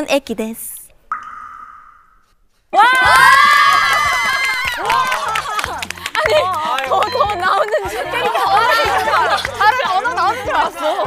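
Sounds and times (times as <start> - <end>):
group shrieking with laughter: 2.8 - 5.6.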